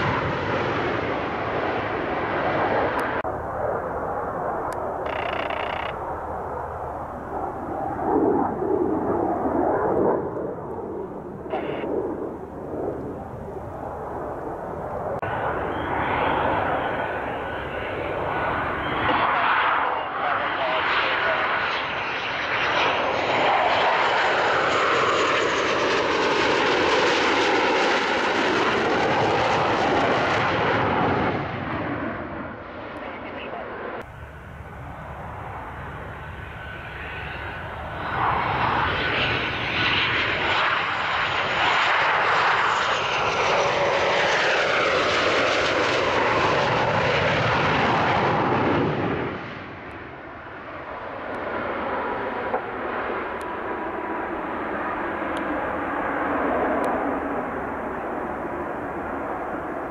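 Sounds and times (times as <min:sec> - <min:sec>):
fighter jet roaring past: 0:00.0 - 0:59.9.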